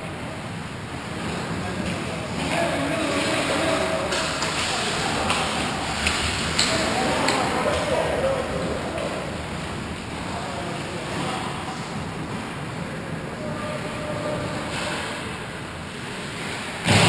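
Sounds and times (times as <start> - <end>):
hockey sticks and puck clacking: 1.9 - 9.2.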